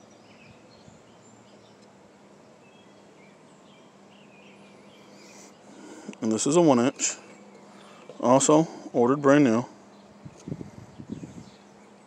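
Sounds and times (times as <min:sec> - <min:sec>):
distant birds chirping: 0:00.0 - 0:12.0
faint steady hum: 0:00.0 - 0:12.0
outdoor background hiss: 0:00.0 - 0:12.0.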